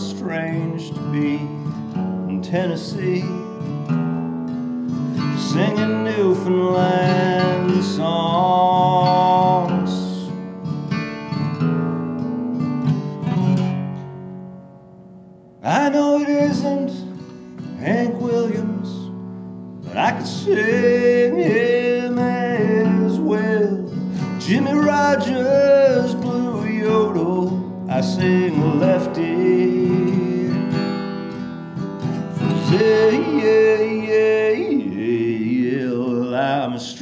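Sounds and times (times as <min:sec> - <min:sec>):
man singing: 0:00.0 - 0:03.8, 0:05.1 - 0:10.5, 0:15.6 - 0:19.2, 0:19.8 - 0:37.0
acoustic guitar playing: 0:00.0 - 0:37.0.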